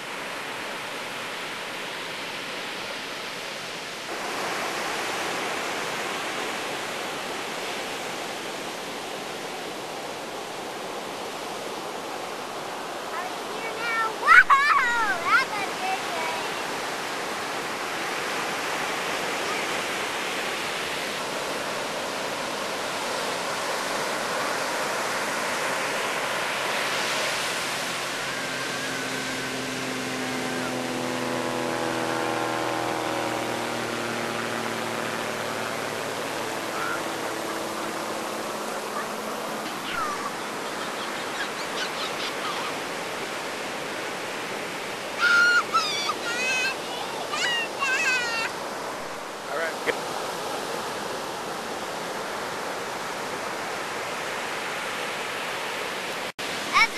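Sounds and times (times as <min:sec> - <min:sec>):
surf breaking on a beach: 0:00.0 - 0:56.9
loud high-pitched cry: 0:14.2 - 0:15.2, 0:45.2 - 0:48.5.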